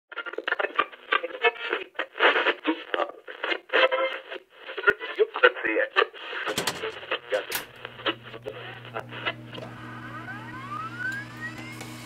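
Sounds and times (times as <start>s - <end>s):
tinny radio voice bursts: 4.8s - 9.4s.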